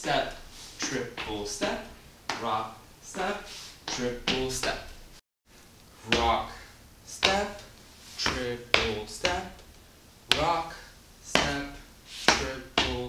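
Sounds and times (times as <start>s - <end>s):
man counting dance steps: 0.0s - 5.2s, 5.9s - 13.0s.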